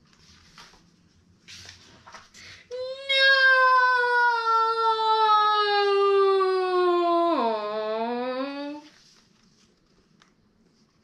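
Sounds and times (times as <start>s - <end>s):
boy crying out: 2.7s - 8.8s.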